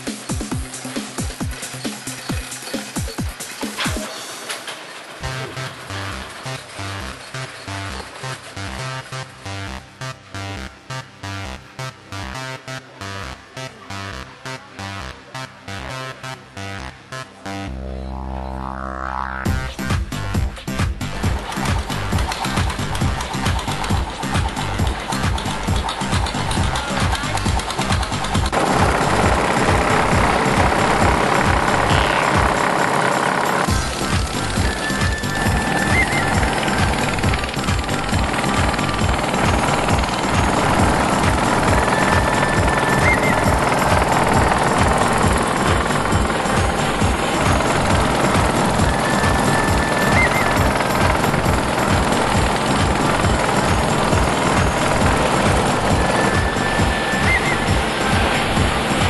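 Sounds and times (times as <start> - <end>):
music playing: 0.0 - 59.0
boat engine chugging: 21.1 - 59.0.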